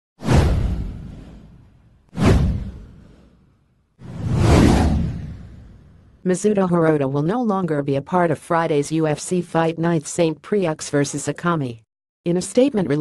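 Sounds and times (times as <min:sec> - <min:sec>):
whoosh sound effects: 0:02.2 - 0:06.0.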